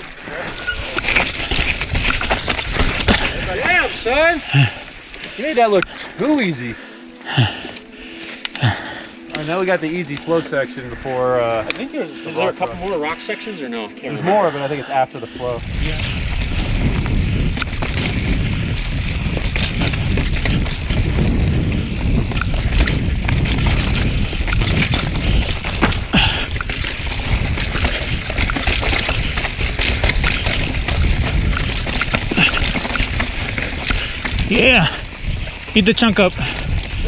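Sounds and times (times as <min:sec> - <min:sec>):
bike rattling over rocks: 0:00.0 - 0:06.6, 0:15.4 - 0:37.0
tyres rolling over dirt: 0:00.0 - 0:06.7, 0:15.5 - 0:37.0
wind buffeting microphone: 0:15.4 - 0:37.0.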